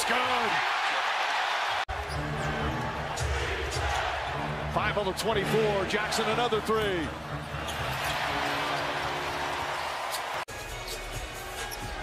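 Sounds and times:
arena crowd noise: 0.0 - 10.5.

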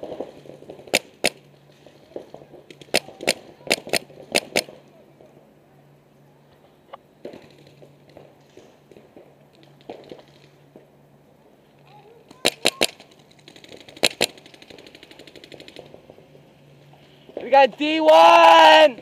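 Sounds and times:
faint rapid string of shots: 0.0 - 5.4, 12.0 - 19.0
paintball markers firing: 2.1 - 4.9, 12.3 - 16.2.

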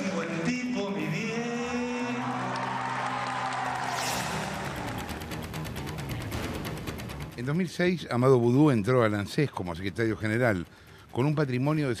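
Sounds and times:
crowd cheering and clapping: 1.7 - 6.6
live rock music electric guitar: 2.7 - 7.4.

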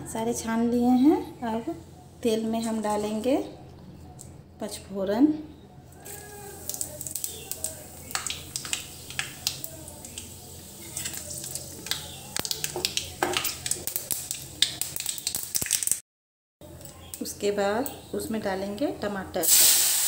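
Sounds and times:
seeds sizzling in hot oil: 6.0 - 16.0, 19.4 - 20.0.

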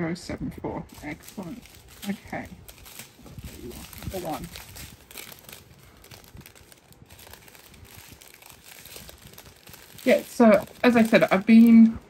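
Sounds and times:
plastic bags crinkling: 0.9 - 12.0.

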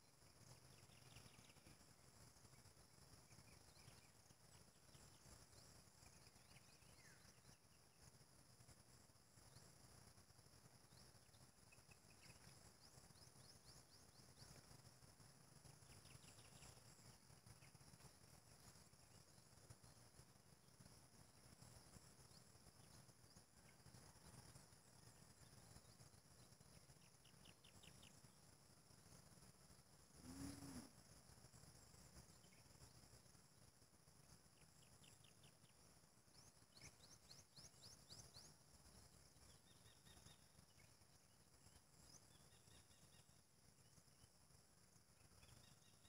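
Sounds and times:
faint high chirping trills: 0.0 - 46.0.

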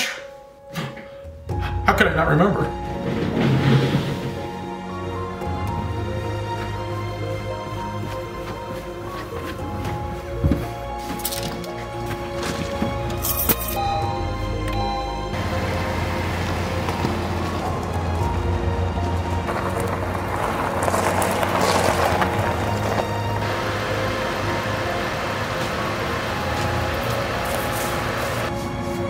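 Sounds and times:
music: 0.0 - 29.0
tyres on gravel: 5.4 - 13.7, 15.4 - 29.0
car engine rumbling: 13.8 - 28.5.

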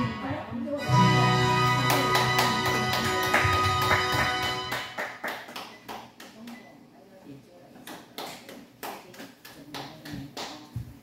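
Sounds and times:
karaoke backing track: 0.0 - 5.0
hand claps: 1.8 - 6.6, 7.9 - 10.9.

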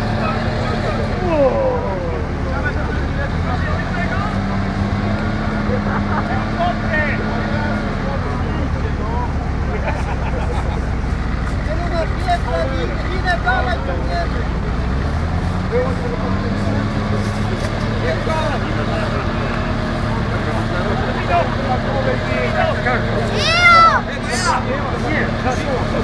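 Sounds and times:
tracked vehicle engine revving: 0.0 - 26.0.

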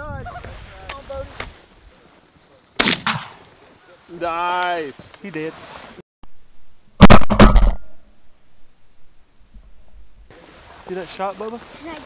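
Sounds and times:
shotgun blast: 2.8 - 3.4, 7.0 - 8.0.

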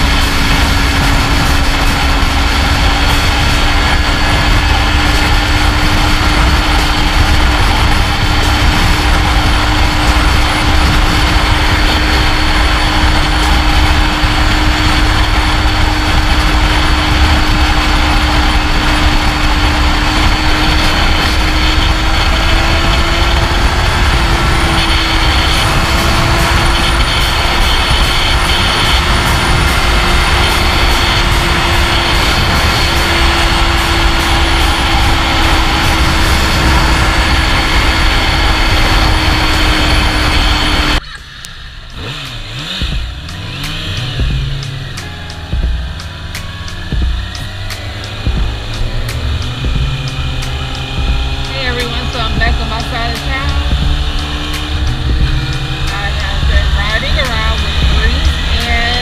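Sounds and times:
motorcycle engine: 0.0 - 59.0.

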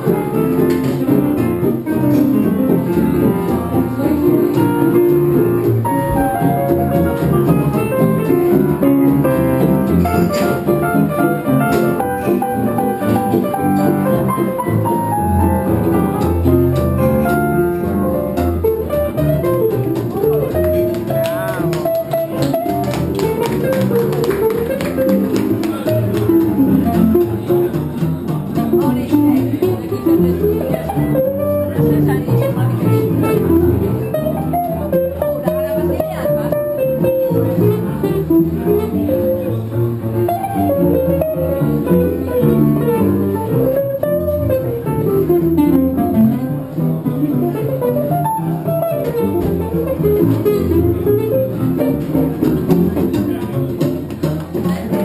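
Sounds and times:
guitar strumming: 0.0 - 55.0
jazz band playing: 0.0 - 55.0
upright double bass: 0.0 - 55.0
clarinet: 29.9 - 52.8.

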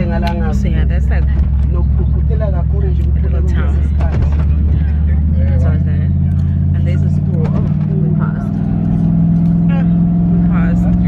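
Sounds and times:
bus engine and road drone: 0.0 - 11.0
voices: 0.0 - 11.0.

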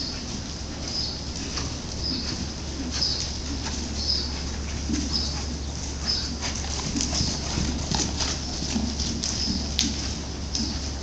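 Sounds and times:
horse hoofbeats on sand: 0.0 - 11.0
steady low hum: 0.0 - 11.0.

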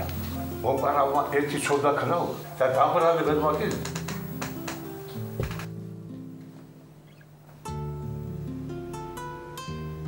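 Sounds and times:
slow held-note music: 0.0 - 10.0.

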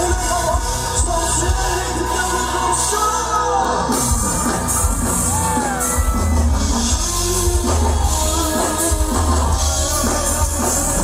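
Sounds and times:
man singing: 0.0 - 4.5, 6.6 - 11.0
electric guitar: 0.0 - 11.0
live rock band playing: 0.0 - 11.0.

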